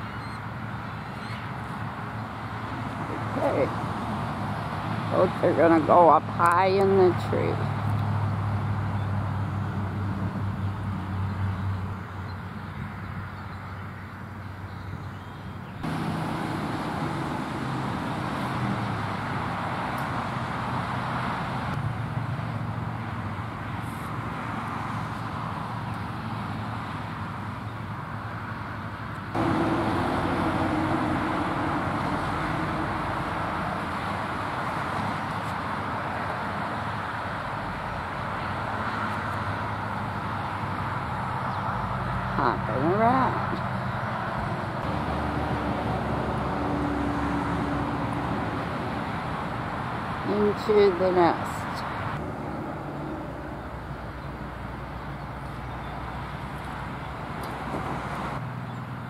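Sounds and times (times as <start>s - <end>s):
distant road traffic rumble: 0.0s - 59.0s.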